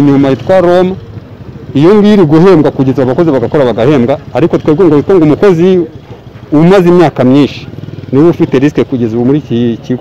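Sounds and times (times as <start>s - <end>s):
man speaking: 0.0s - 1.0s, 1.6s - 10.0s
vehicle engine running: 0.0s - 10.0s.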